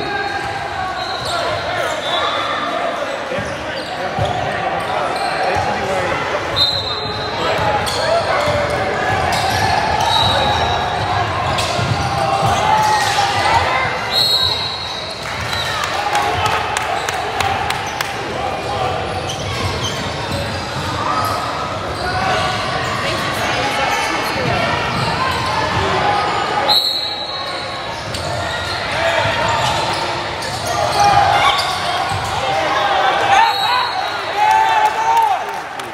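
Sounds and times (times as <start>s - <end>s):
echoing chatter of spectators: 0.0s - 35.9s
high whistle-like squeals: 14.0s - 15.7s, 26.6s - 28.8s.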